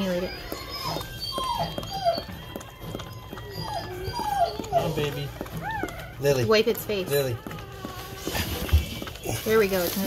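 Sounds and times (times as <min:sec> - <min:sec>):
dog whimpering: 0:00.0 - 0:10.0.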